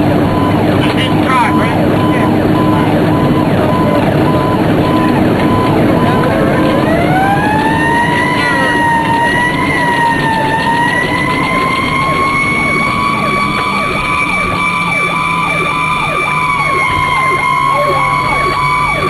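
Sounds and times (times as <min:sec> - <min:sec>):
siren wailing: 0:00.0 - 0:19.0
fast yelping siren: 0:00.3 - 0:19.0.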